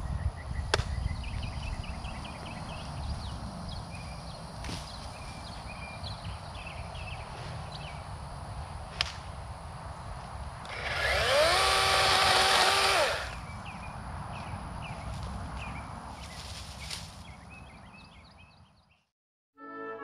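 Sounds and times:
battery chainsaw spinning: 0:10.7 - 0:13.4.

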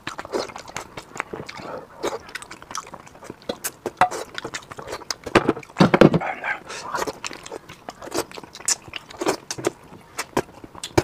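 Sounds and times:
lip smacks: 0:00.0 - 0:11.0
man chewing with mouth clicks: 0:00.0 - 0:11.0.

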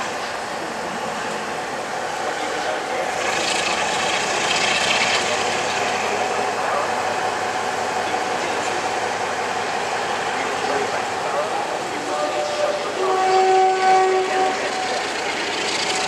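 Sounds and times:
diesel locomotive engine working: 0:00.0 - 0:16.0
train coaches rolling past: 0:00.0 - 0:16.0.

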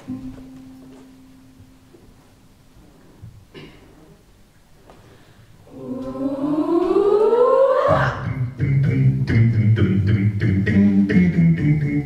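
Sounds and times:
voices singing rising glide: 0:05.6 - 0:08.6.

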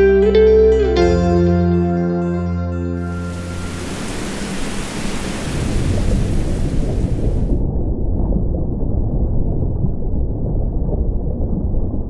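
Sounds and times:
low rumble: 0:03.0 - 0:12.0
heavy rain on water: 0:03.1 - 0:07.6.

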